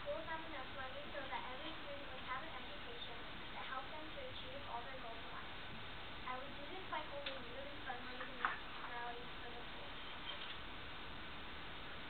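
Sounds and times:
girl reading aloud: 0:00.0 - 0:05.5, 0:06.2 - 0:10.3
camera noise hiss: 0:00.0 - 0:12.0.

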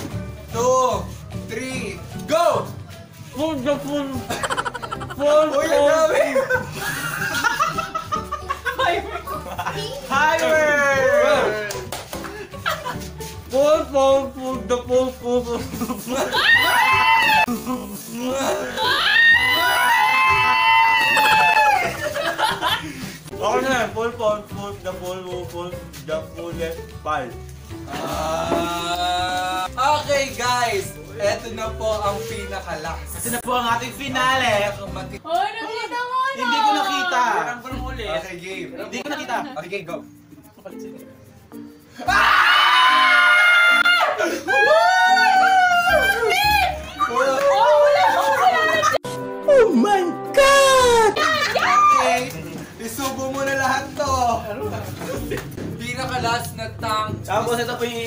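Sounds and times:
young people laughing and cheering: 0:04.2 - 0:13.1, 0:15.7 - 0:23.3, 0:27.8 - 0:29.7, 0:35.6 - 0:37.6, 0:42.0 - 0:52.8.

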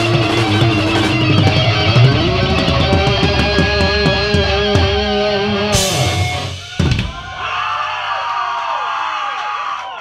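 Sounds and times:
metal band final chord: 0:00.0 - 0:06.9
audience cheering and shouting: 0:00.0 - 0:10.0
drum hit: 0:00.1 - 0:07.4.

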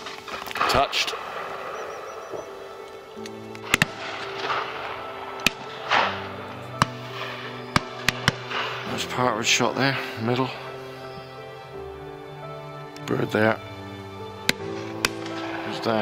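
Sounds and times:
shotguns firing: 0:00.0 - 0:02.9, 0:03.5 - 0:09.2
music of held chords: 0:01.2 - 0:16.0.

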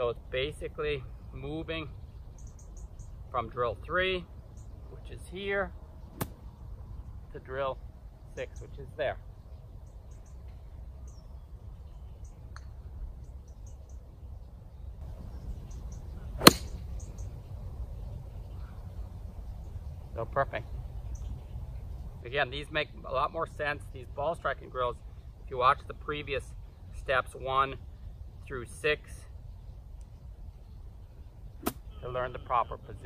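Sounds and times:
golf club striking ball: 0:06.1 - 0:06.5, 0:16.3 - 0:17.1.

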